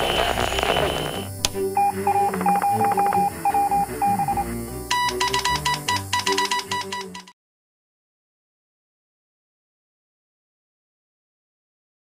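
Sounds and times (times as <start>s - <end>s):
higher brighter beeps: 0.0s - 7.3s
morse code beeping: 0.0s - 7.4s
soft background music: 0.1s - 7.3s.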